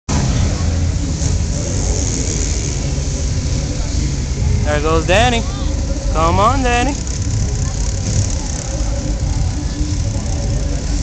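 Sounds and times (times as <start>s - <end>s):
motorcycle engines running: 0.1s - 11.0s.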